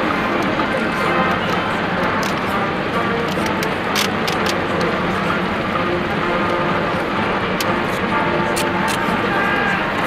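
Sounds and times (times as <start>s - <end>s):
crowd cheering and shouting: 8.2s - 10.0s.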